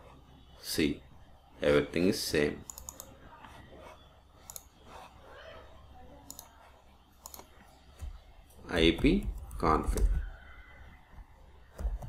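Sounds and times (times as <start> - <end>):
computer mouse clicks: 2.6 - 3.1, 4.4 - 4.7, 6.2 - 6.5, 7.2 - 8.1.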